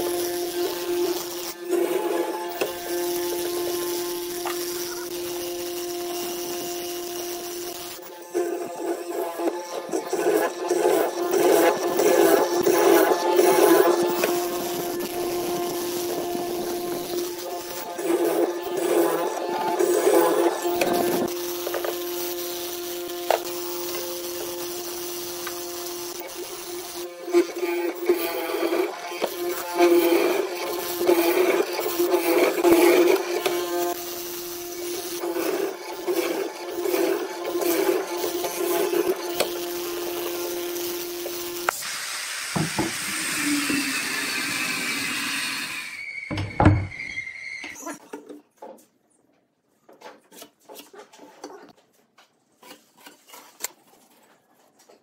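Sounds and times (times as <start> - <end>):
mortising machine humming: 0.0 - 46.9.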